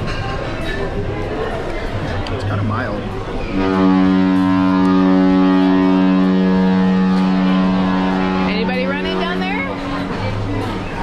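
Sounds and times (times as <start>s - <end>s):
people talking: 0.0s - 11.0s
ship's horn blast: 3.4s - 11.0s.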